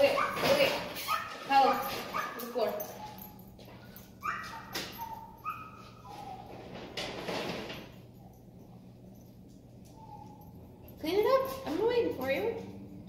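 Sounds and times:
dog whimpering: 4.2s - 6.7s, 9.9s - 10.7s.

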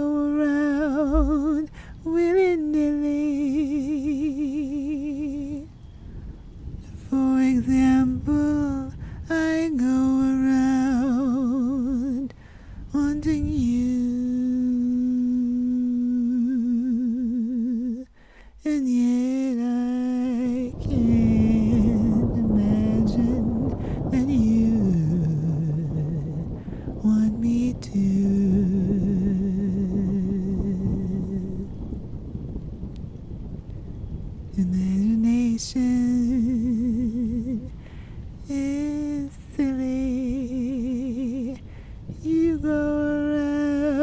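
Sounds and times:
rain and thunder: 0.0s - 3.5s, 5.6s - 14.4s, 18.1s - 44.0s
woman humming: 0.0s - 5.7s, 13.0s - 18.1s
person humming a slow melody: 0.0s - 5.8s, 6.9s - 31.9s, 34.6s - 44.0s.

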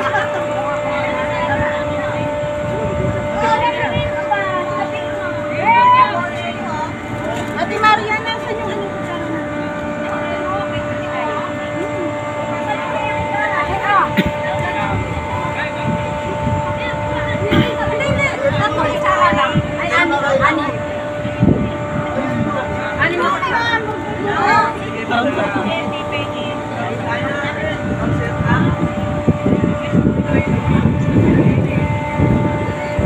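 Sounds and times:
air-conditioning units humming: 0.0s - 33.0s
crowd of people talking: 0.0s - 33.0s
low uneven rumble: 0.0s - 33.0s.

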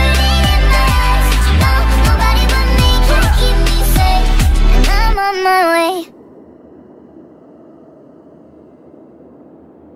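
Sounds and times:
pitched-up woman singing: 0.0s - 5.6s.

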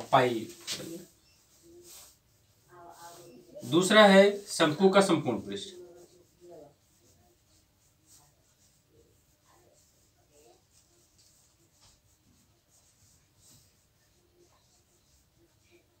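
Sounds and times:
marker pen scratching on whiteboard: 0.0s - 16.0s.

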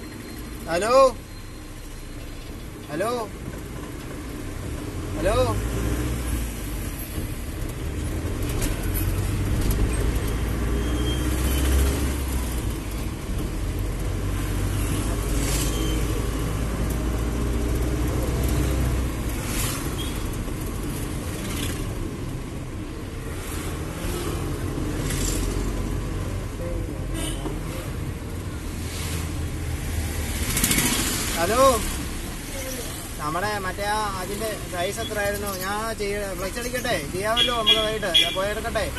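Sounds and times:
road noise: 0.0s - 38.9s.

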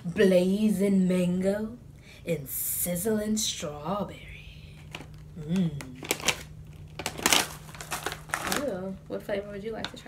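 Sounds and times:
plastic candy bag crinkling: 4.7s - 9.1s.

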